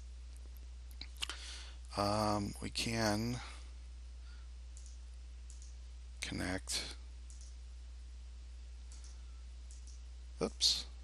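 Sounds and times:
steady low hum: 0:00.0 - 0:11.0
faint computer mouse clicks: 0:04.8 - 0:05.8, 0:07.3 - 0:07.6, 0:08.9 - 0:10.0.

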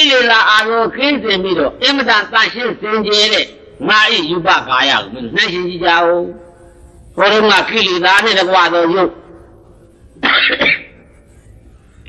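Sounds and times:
person coughing: 0:10.2 - 0:11.0.

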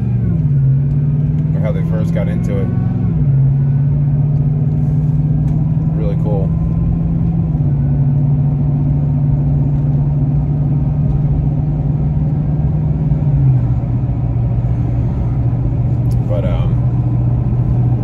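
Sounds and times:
car engine and road noise: 0:00.0 - 0:18.0.

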